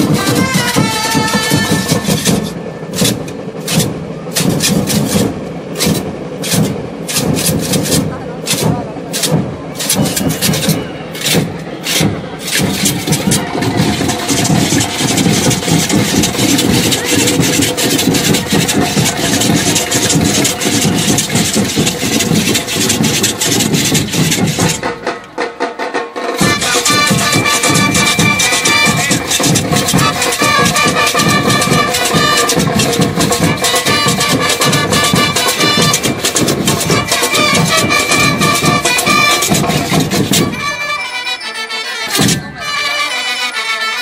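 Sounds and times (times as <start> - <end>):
sharp fast drum strokes: 0.0 - 40.6
dense low drumming: 11.4 - 25.0.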